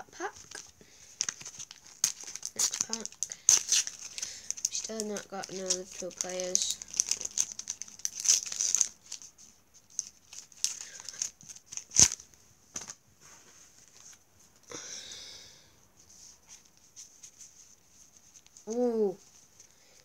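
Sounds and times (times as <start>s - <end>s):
wrapper crinkling and rustling: 0.0s - 13.0s, 16.4s - 20.0s
packet tearing open: 0.4s - 12.2s.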